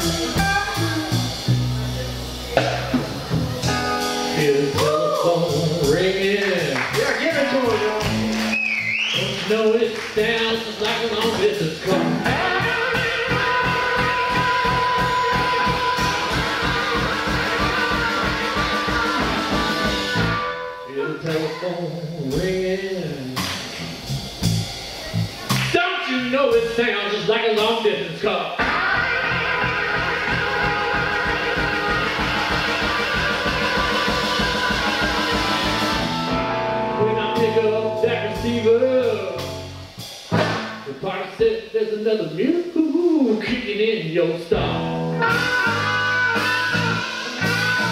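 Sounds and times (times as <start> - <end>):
electric guitar: 0.0 - 25.8, 28.6 - 40.9, 44.5 - 47.9
blues band playing live: 0.0 - 42.0, 43.4 - 47.9.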